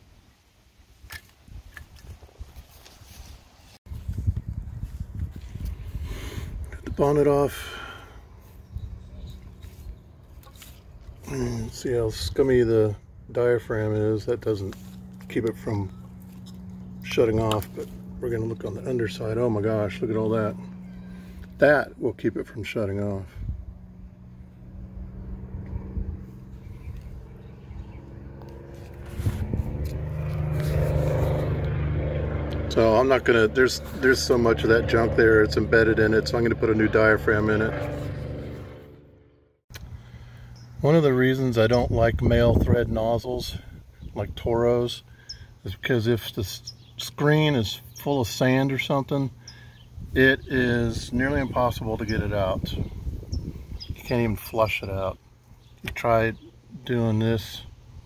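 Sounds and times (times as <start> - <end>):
low rumbling noise: 3.9 - 40.4
low engine drone: 5.4 - 42.2.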